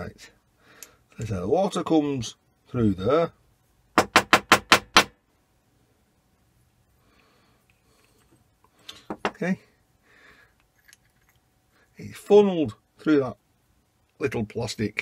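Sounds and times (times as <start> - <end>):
faint handling noises: 6.4 - 9.6, 10.5 - 11.6.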